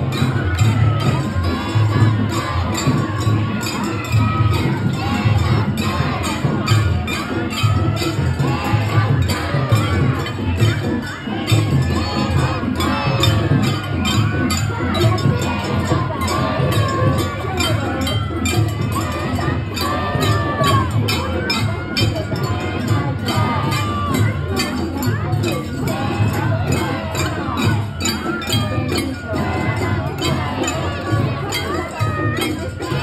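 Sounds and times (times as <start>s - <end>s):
low drum beat: 0.0s - 28.0s
crowd talking and shouting: 0.0s - 33.0s
jingling metal percussion: 0.0s - 33.0s.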